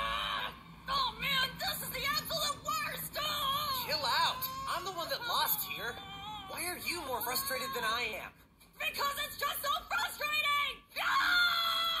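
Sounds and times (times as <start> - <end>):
cartoon boy screaming: 0.0 - 0.6, 3.2 - 8.1, 10.5 - 12.0.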